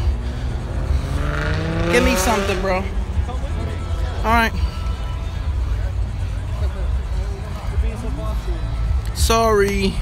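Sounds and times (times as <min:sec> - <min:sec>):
car engine revving up: 0:00.0 - 0:03.9.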